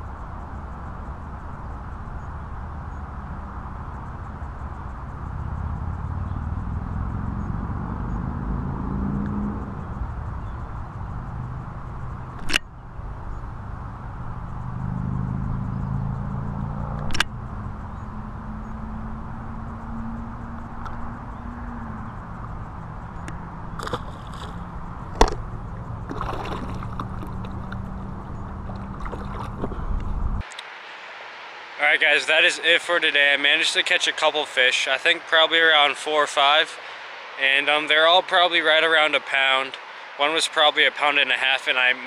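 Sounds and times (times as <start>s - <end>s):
low engine drone: 0.0s - 42.0s
sharp clicks: 12.3s - 12.8s, 17.0s - 17.4s.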